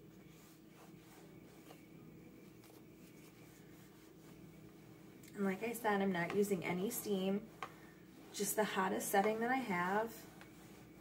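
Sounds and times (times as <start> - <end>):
iron rubbing over towel: 0.0 - 11.0
low steady hum: 0.0 - 11.0.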